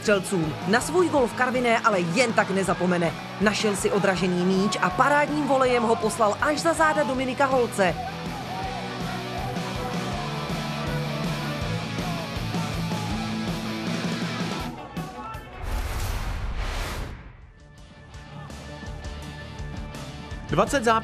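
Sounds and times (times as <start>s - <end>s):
rock music with guitar: 0.2s - 15.0s, 17.6s - 20.6s.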